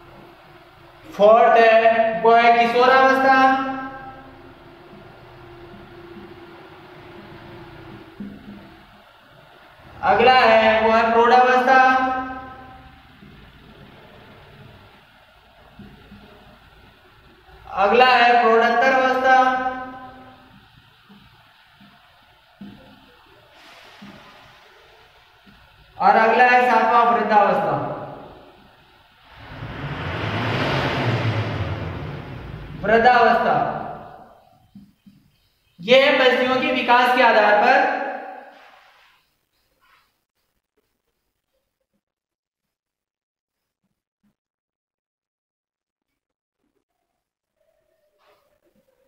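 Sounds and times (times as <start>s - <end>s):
low engine-like hum: 0.0s - 1.2s, 28.0s - 34.6s
steady background hum: 0.0s - 40.0s
rushing noise: 28.1s - 34.4s.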